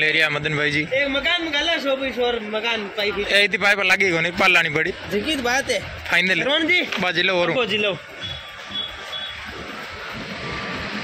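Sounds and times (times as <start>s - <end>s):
vehicle passing close: 8.0s - 11.0s
short high beeps: 8.2s - 9.5s.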